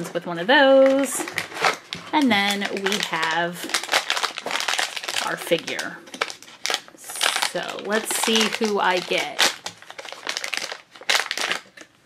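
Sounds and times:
foil and plastic wrapping crinkling: 0.0s - 12.0s.

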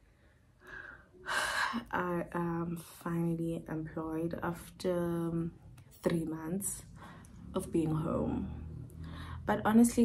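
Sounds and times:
woman breathing: 0.0s - 1.9s, 6.9s - 7.5s, 8.9s - 9.5s.

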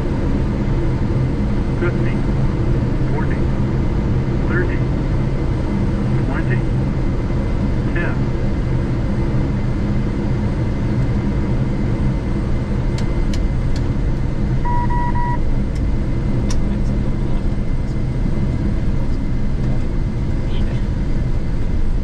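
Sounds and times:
engines and wheels rumbling: 0.0s - 22.0s
short electronic beeps: 14.6s - 15.4s.

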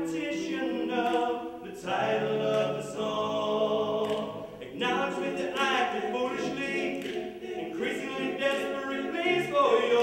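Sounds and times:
male a cappella harmony singing: 0.0s - 10.0s.

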